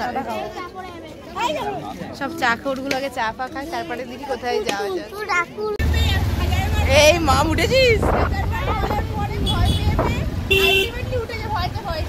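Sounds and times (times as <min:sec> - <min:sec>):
women talking and laughing: 0:00.0 - 0:12.0
motorcycle rumble: 0:05.8 - 0:12.0.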